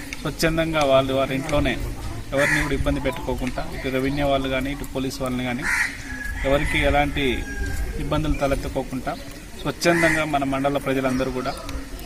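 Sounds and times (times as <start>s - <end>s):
bird calling: 0.0s - 12.0s
man speaking into a microphone: 0.2s - 5.8s, 6.4s - 11.7s.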